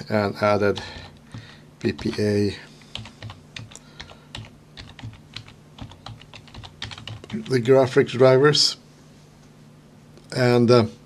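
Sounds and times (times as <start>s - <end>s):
computer keyboard typing: 0.7s - 7.6s.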